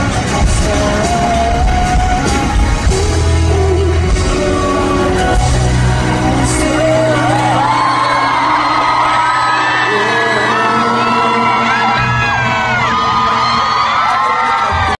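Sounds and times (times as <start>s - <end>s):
live band music: 0.0s - 14.9s
crowd screaming and whooping: 0.0s - 15.0s.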